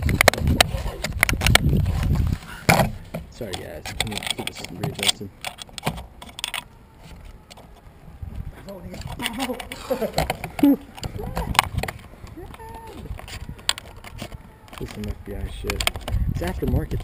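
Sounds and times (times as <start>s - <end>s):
rustling: 0.0s - 16.3s
clicks and rattles: 3.4s - 6.6s
microphone handling rumble: 15.1s - 17.0s.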